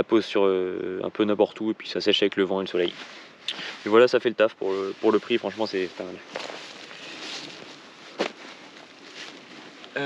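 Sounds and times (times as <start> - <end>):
rustling on dry leaves: 2.7 - 10.0
nylon backpack handled: 6.2 - 10.0.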